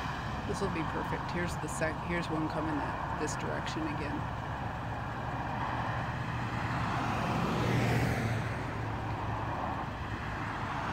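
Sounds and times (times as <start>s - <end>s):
van driving past: 4.2s - 10.9s.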